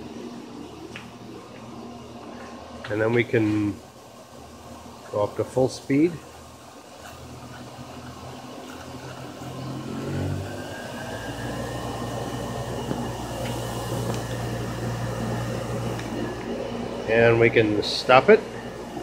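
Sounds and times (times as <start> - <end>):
electric motor hum and whine: 0.0 - 19.0.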